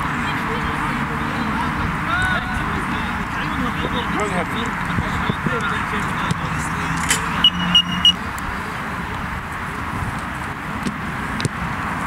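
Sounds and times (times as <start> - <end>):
short high beeps: 7.4 - 8.2.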